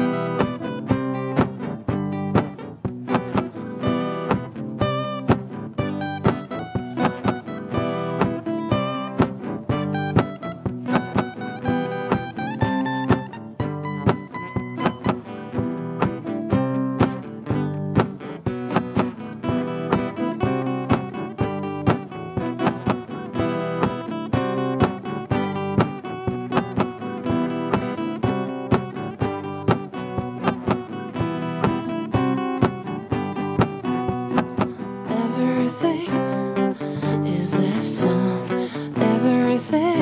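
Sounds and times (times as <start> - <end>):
two acoustic guitars playing: 0.0 - 40.0.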